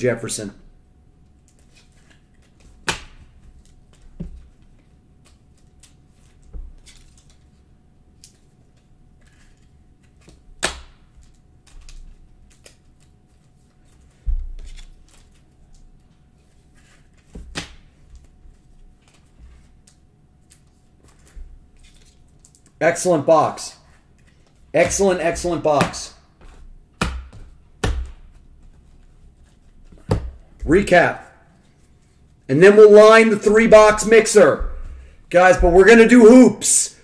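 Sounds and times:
cards rustling in plastic sleeves: 1.4 - 2.8, 3.5 - 26.6, 30.7 - 36.8.

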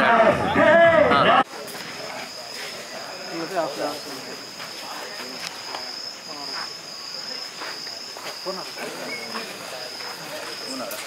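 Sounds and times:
faint voices talking: 0.0 - 11.0
crickets trilling: 1.5 - 11.0.

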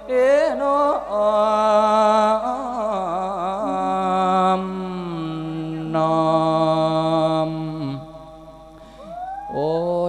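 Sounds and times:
monk singing sermon: 0.0 - 10.0.

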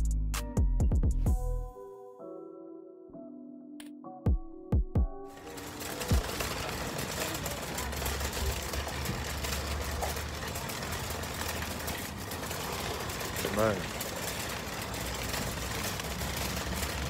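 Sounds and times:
rough rushing noise: 5.4 - 17.0.

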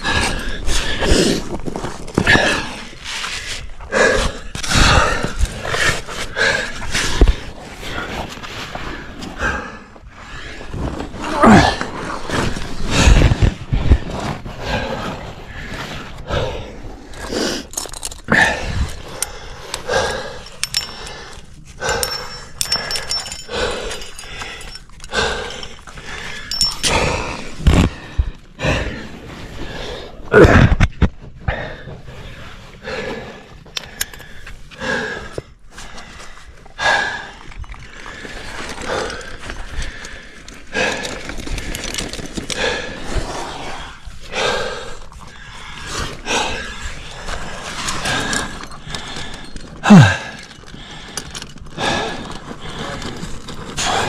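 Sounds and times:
hard effortful breathing: 0.0 - 54.0.

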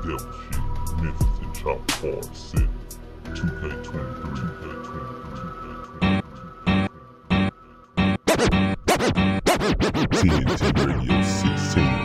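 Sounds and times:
hip hop beat: 0.0 - 12.0
record scratches: 8.0 - 12.0.

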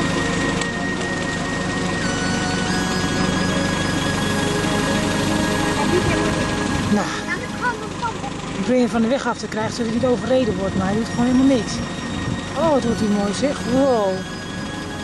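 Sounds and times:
steady dense noise: 0.0 - 15.0
synthesizer background music: 0.0 - 15.0.

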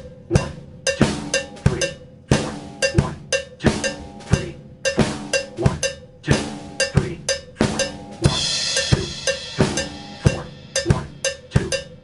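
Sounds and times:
drum kit groove: 0.0 - 12.0.

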